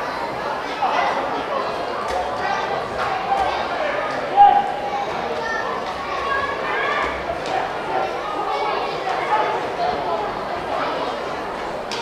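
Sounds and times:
babble of voices: 0.0 - 12.0.

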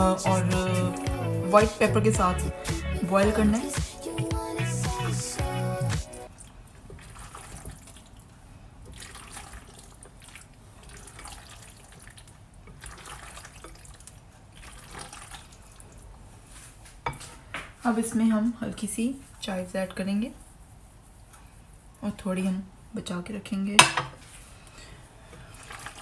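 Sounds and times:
background music: 0.0 - 6.3
wet mixing sounds: 0.0 - 16.8, 18.8 - 22.0, 25.1 - 26.0.

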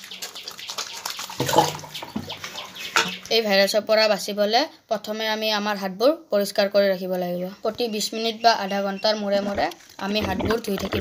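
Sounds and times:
water splashing in plastic bucket: 0.0 - 3.4, 9.4 - 11.0.

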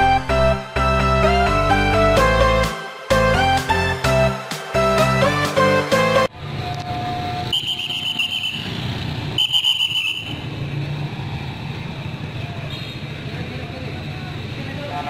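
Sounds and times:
shrill whistle blasts: 7.4 - 8.7, 9.3 - 10.4.

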